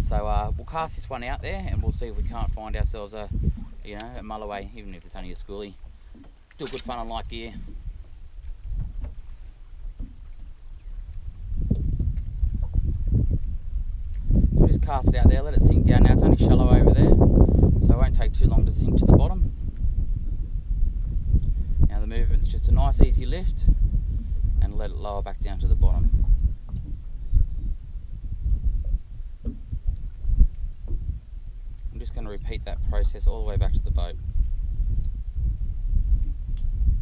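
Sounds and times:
wind rumbling on microphone: 0.0s - 37.0s
water slapping boat hull: 0.7s - 14.2s, 25.9s - 34.5s.

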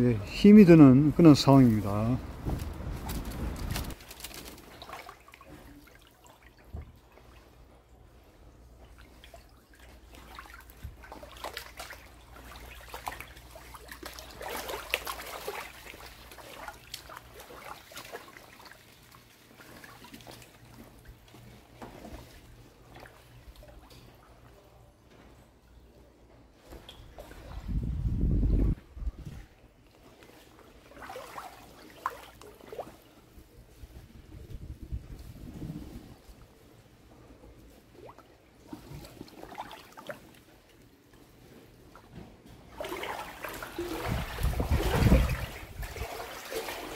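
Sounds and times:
faint splashes: 0.0s - 25.0s, 26.6s - 28.0s, 29.1s - 34.3s, 35.1s - 46.9s
water sloshing and trickling: 0.0s - 46.9s.

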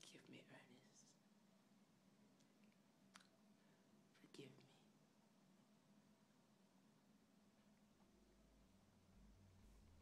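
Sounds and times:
faint whispering: 0.0s - 1.2s, 3.8s - 5.0s
low steady hum: 0.0s - 10.0s.

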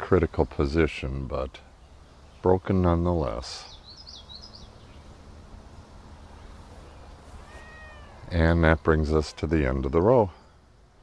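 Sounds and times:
faint high bird chirps: 3.3s - 9.8s
animal call rising and falling: 7.2s - 9.7s.

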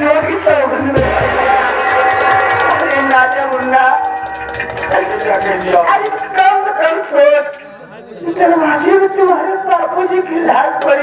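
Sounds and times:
drum and percussion beat: 0.0s - 7.8s
held melody: 0.1s - 7.8s
heavy drum stroke: 0.8s - 6.2s.

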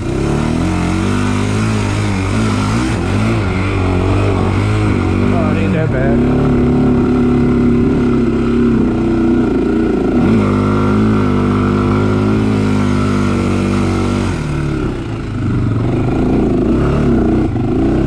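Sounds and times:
quad engine running: 0.0s - 18.0s.

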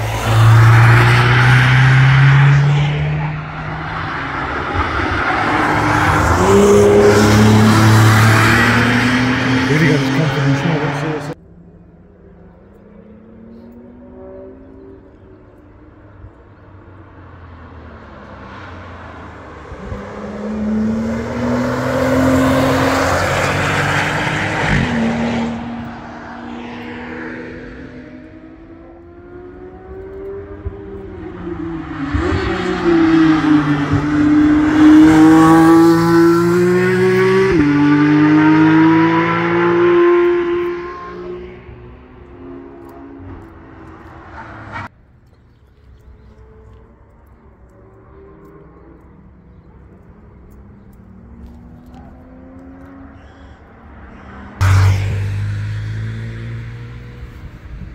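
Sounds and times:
cars driving past at speed: 0.0s - 44.9s, 45.7s - 57.9s.

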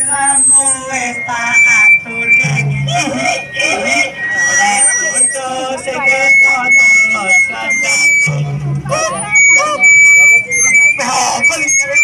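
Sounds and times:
high whistle-like tone: 0.0s - 12.0s
music: 0.0s - 12.0s
people's voices: 0.0s - 12.0s.

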